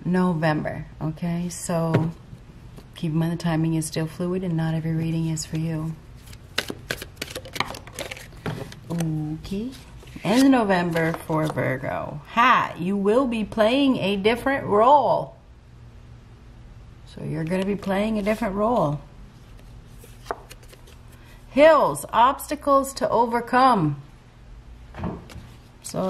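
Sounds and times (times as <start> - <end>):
low room hum: 0.0 - 26.0.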